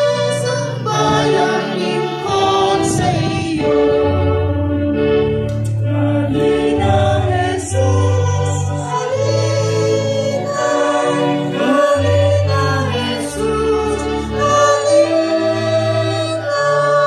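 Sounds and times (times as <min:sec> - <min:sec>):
congregation singing a hymn: 0:00.0 - 0:17.0
low musical accompaniment: 0:00.0 - 0:17.0.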